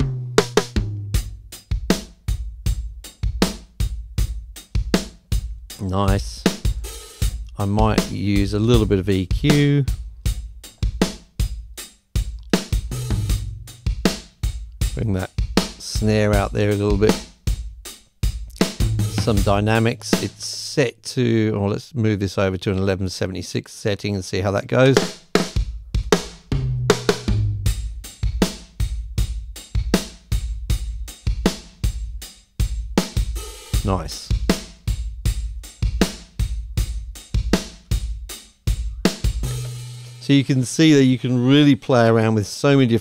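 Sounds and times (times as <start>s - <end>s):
acoustic drum kit groove: 0.0s - 21.2s, 24.7s - 42.9s
tom hits: 18.6s - 20.5s.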